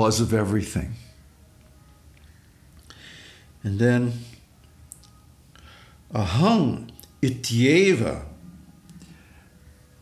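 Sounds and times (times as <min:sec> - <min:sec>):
man speaking: 0:00.0 - 0:01.1, 0:03.6 - 0:04.4, 0:06.1 - 0:08.4
soft intake of breath: 0:02.9 - 0:03.6, 0:05.5 - 0:06.1.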